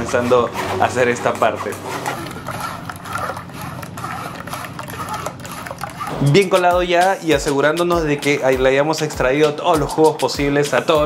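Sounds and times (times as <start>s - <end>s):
liquid trickling into metal bowl: 1.8s - 6.6s.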